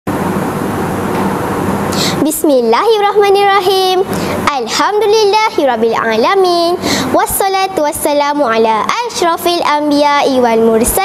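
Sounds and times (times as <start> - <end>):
steady hiss and rumble: 0.1 - 11.0.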